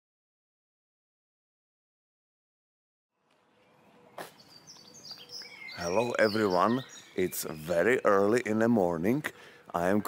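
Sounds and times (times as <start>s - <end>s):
small birds chirping: 3.3s - 10.0s
man's voice: 5.8s - 10.0s.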